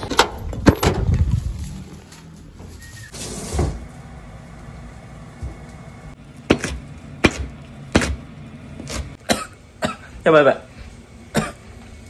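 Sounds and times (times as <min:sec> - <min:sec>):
knife chopping on cutting board: 0:06.5 - 0:08.2.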